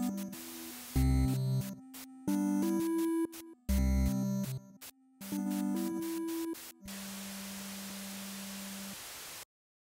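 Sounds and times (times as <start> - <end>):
electronic static hiss: 0.0 - 3.8, 4.4 - 9.5.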